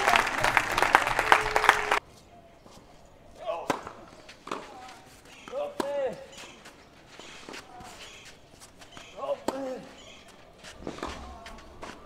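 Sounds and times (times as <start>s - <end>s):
footsteps on clay: 2.0s - 12.0s
racket hitting tennis ball: 3.6s - 12.0s.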